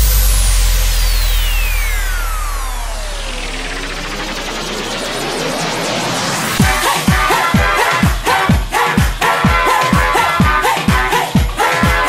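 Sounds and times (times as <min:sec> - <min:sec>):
rising noise build-up with drum roll: 0:00.0 - 0:10.2
falling synth sweep: 0:00.0 - 0:10.6
house music: 0:00.0 - 0:12.0.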